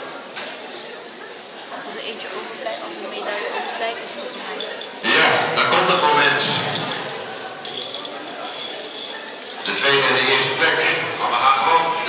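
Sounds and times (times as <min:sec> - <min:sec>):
people talking indistinctly: 0:00.6 - 0:12.0.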